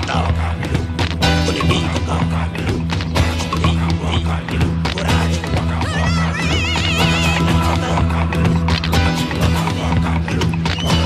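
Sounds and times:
dance-pop music: 0:00.0 - 0:11.0.

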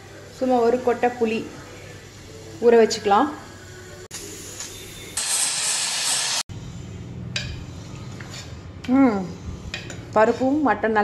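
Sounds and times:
pressure cooker steam hissing: 0:03.0 - 0:06.5.

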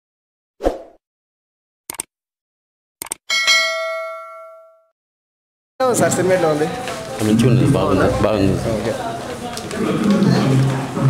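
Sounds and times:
bell ding: 0:03.3 - 0:04.9.

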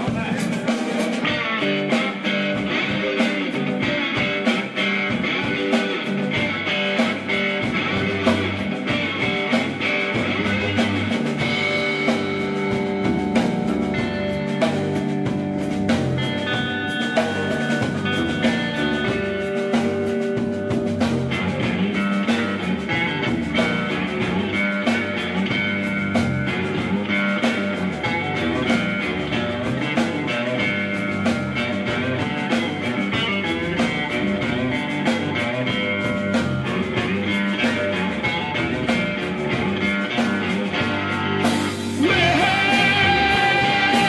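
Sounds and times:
electric bass: 0:00.0 - 0:44.0
electric guitar: 0:00.0 - 0:44.0.

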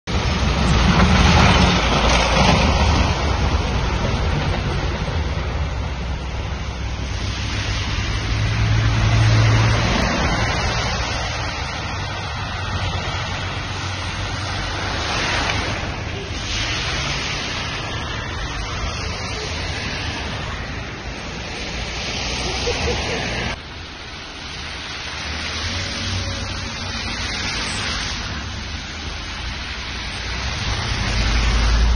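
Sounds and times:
vehicle engines running: 0:00.0 - 0:31.9
steady rushing noise: 0:00.1 - 0:31.9.

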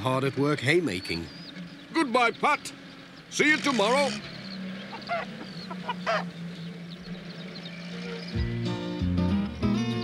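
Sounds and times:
van engine humming: 0:00.0 - 0:10.0
hen clucking and squawking: 0:03.4 - 0:06.4.

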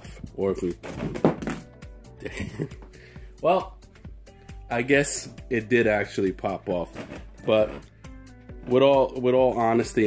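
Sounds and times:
background music: 0:00.0 - 0:10.0
phone landing with a thunk: 0:00.8 - 0:01.7.

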